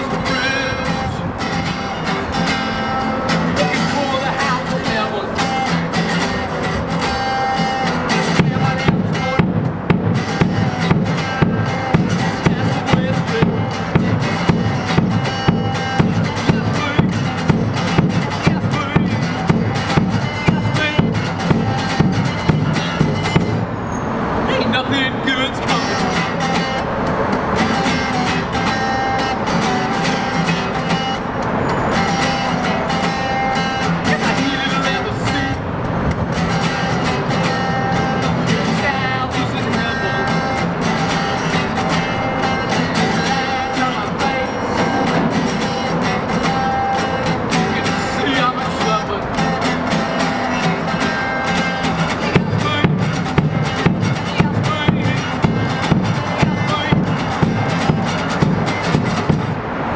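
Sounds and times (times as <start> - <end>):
strummed acoustic guitar: 0.0 - 23.9, 24.5 - 59.9
bass drum kicks: 8.4 - 16.2.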